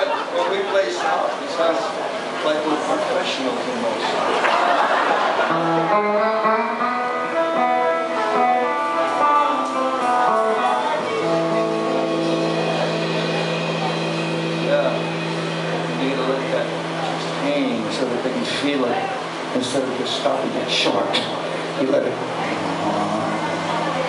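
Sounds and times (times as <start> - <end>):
electric guitar melody: 5.5 - 24.0.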